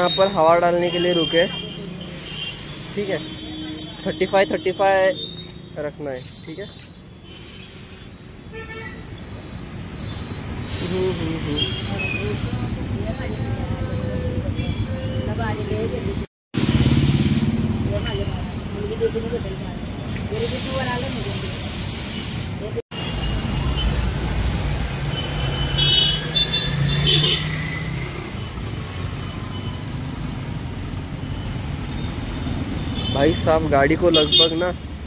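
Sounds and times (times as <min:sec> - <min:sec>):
compressed air hissing into tyre: 0:07.2 - 0:08.3, 0:20.2 - 0:22.7
vehicle engines running: 0:09.9 - 0:21.4.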